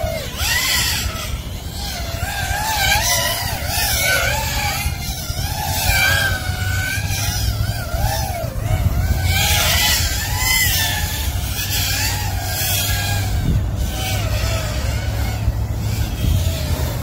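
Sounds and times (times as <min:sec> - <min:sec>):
quadcopter motors whining: 0:00.0 - 0:17.0.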